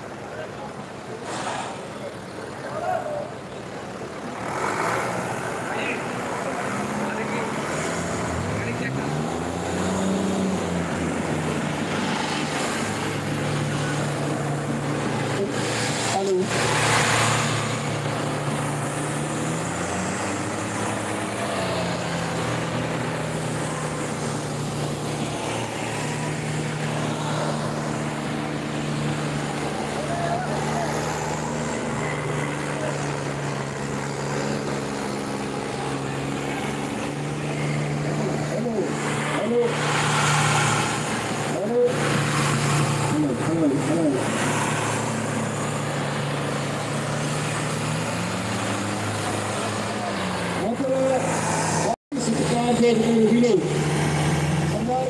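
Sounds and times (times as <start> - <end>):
tractor diesel engines under load: 0.0 - 55.0.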